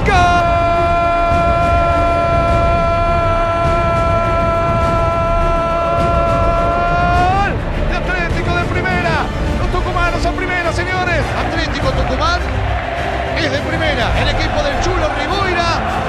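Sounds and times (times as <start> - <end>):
commentator's long goal cry: 0.0 - 7.6
excited shouting: 0.0 - 16.0
music: 0.0 - 16.0.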